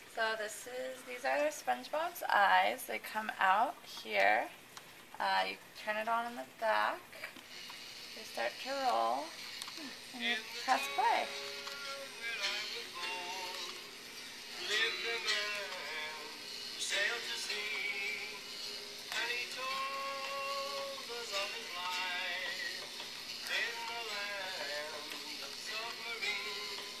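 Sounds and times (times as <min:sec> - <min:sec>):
song from small speakers: 0:07.4 - 0:27.0.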